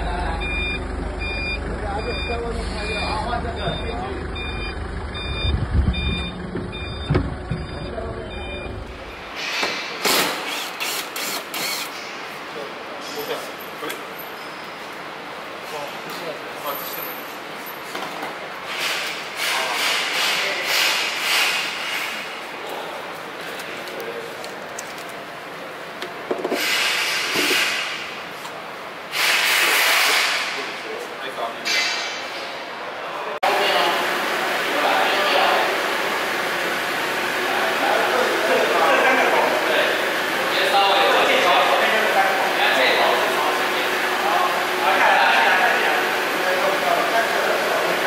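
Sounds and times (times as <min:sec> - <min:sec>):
truck engine running: 0:00.0 - 0:09.3
reversing alarm beeping: 0:00.3 - 0:09.3.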